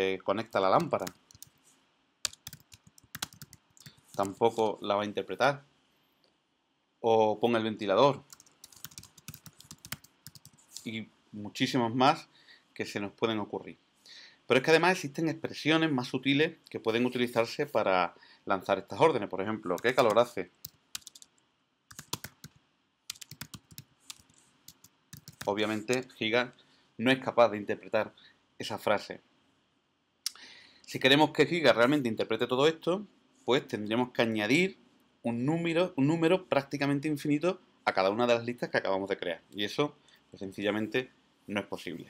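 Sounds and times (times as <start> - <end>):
typing on keyboard: 0.8 - 1.6, 2.2 - 4.4, 8.3 - 10.8, 19.8 - 21.3, 21.9 - 26.1.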